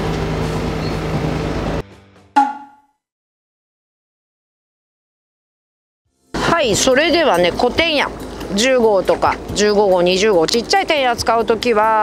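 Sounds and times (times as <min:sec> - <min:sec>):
wind: 0:00.0 - 0:01.8, 0:06.4 - 0:12.0
boat engine humming: 0:06.4 - 0:12.0.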